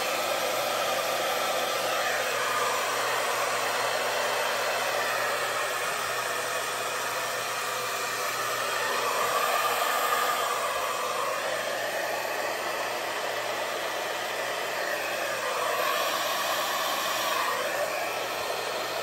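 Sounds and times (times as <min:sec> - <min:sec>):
hair dryer blowing: 0:00.0 - 0:19.0.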